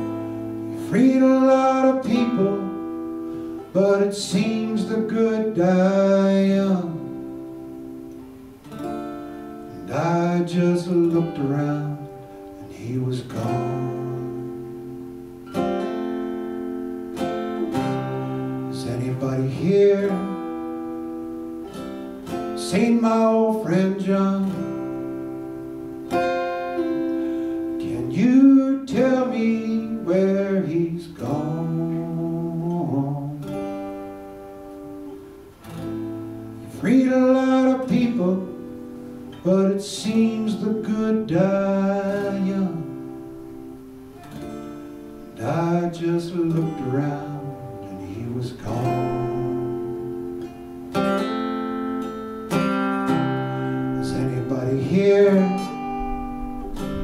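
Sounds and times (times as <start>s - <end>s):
man singing: 0.0s - 7.9s, 8.8s - 15.0s, 17.2s - 34.0s, 36.5s - 43.7s, 45.3s - 50.4s, 52.5s - 57.0s
acoustic guitar folk ballad: 0.0s - 57.0s.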